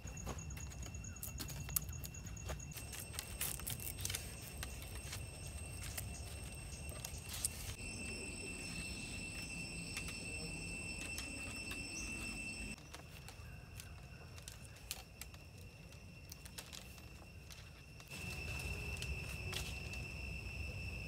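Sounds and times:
steady high-pitched whine: 0.0s - 21.0s.

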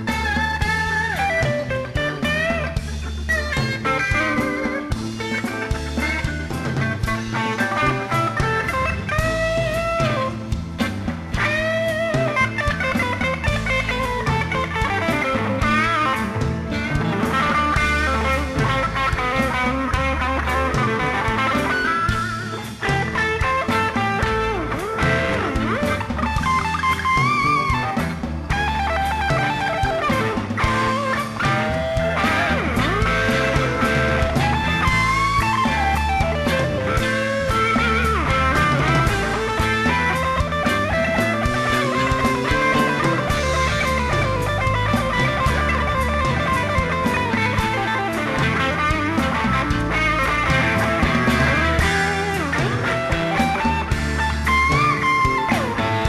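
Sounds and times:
blues band playing: 0.0s - 56.0s
electric guitar lead bending notes: 0.0s - 56.0s.

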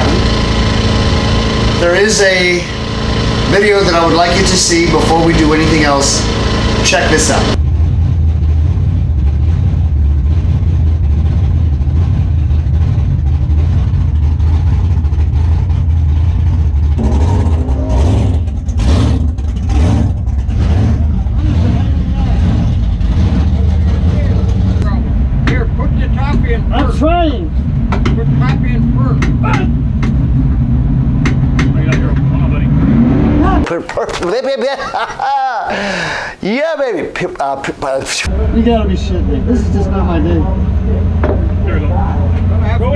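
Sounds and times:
race car engine idling: 0.0s - 33.7s, 38.2s - 42.9s.

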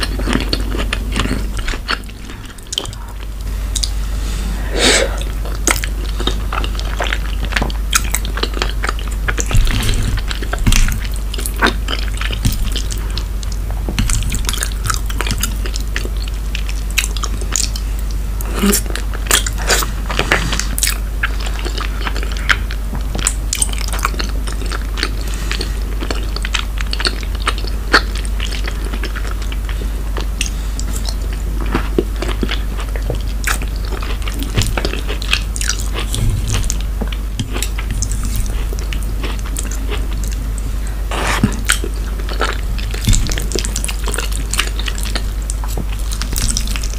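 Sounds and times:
chewing and wet mouth sounds: 0.0s - 4.0s, 4.6s - 46.9s
steady low hum: 0.0s - 46.9s.

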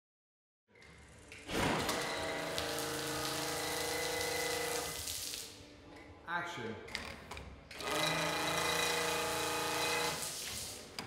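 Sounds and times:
pump whine: 1.6s - 5.0s, 7.8s - 10.3s.

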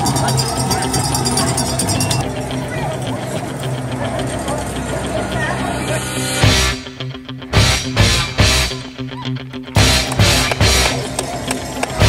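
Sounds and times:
voices: 0.0s - 7.1s, 8.0s - 12.0s
background music: 0.0s - 12.0s
loud rock beat: 3.7s - 12.0s.

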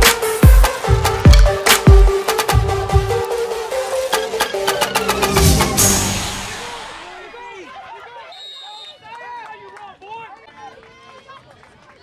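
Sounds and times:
referee's whistle blast: 8.3s - 9.0s.

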